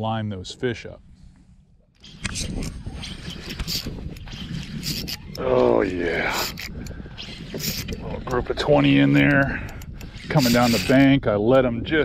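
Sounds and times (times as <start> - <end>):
crackles: 2.0 - 5.5.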